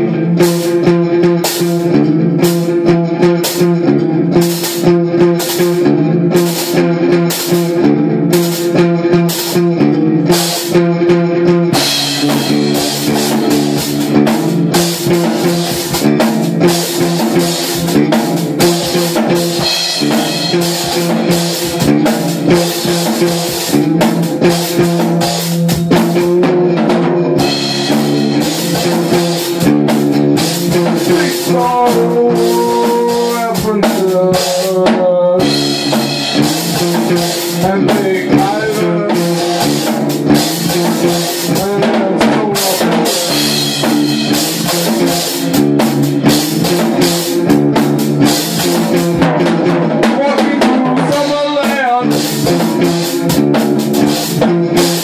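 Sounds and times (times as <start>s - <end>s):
drum kit: 0.0s - 55.0s
guitar riff: 0.0s - 55.0s.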